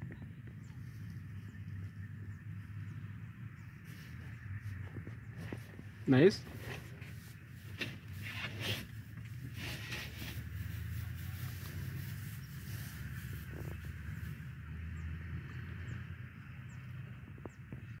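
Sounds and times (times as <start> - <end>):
rustling through dry grass: 0.0 - 15.2
steady low rumble: 0.0 - 18.0.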